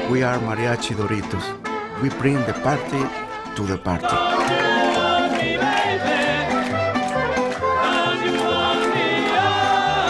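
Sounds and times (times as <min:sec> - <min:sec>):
mariachi band playing: 0:00.0 - 0:10.0
voices singing: 0:03.8 - 0:10.0.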